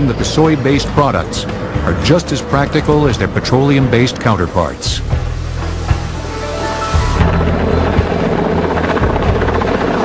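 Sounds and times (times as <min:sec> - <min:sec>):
helicopter rotor and engine: 0:00.0 - 0:05.0, 0:06.2 - 0:10.0
background music: 0:00.0 - 0:10.0.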